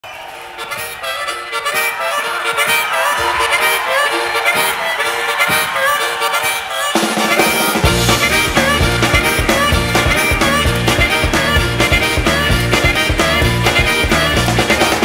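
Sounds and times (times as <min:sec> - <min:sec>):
blues harmonica: 0:00.1 - 0:15.0
bass and drums: 0:07.0 - 0:15.0.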